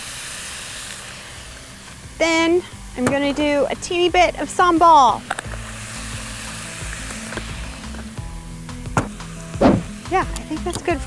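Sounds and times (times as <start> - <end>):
food sizzling in frying pan: 0.0 - 3.0, 4.9 - 10.6.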